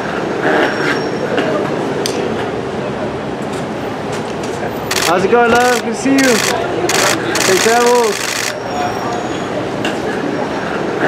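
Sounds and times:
road traffic noise: 0:00.0 - 0:11.0
faint voices: 0:01.2 - 0:11.0.

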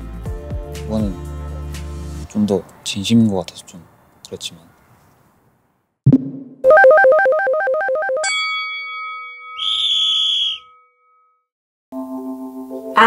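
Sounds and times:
music: 0:00.0 - 0:02.3, 0:12.0 - 0:13.0.

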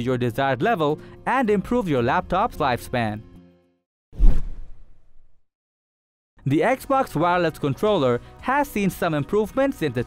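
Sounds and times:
whoosh with low thump: 0:04.2 - 0:05.4.

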